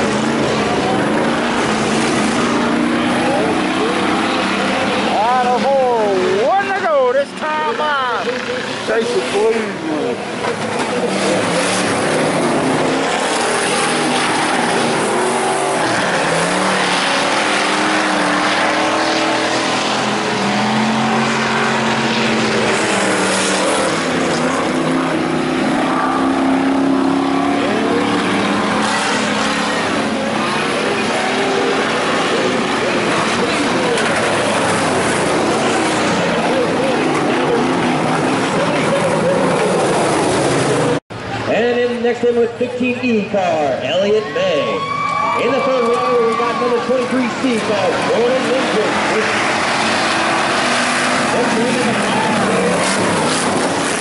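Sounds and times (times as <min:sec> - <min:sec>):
race car engines revving: 0:00.0 - 0:54.0.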